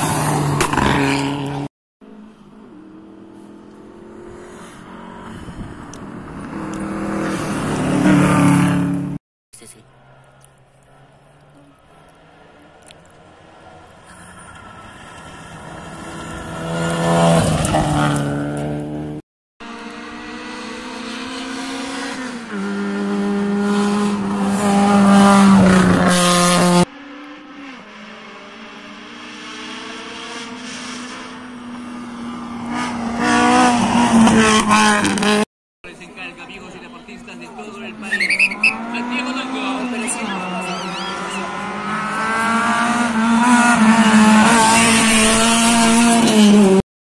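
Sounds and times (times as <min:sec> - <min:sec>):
rally car engine passing: 0:00.0 - 0:09.2, 0:09.9 - 0:46.8.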